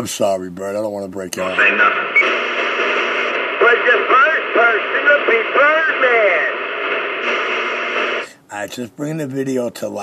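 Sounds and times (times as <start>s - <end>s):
man's voice over radio: 1.4s - 2.1s, 3.5s - 6.7s
radio static hiss: 1.4s - 8.3s.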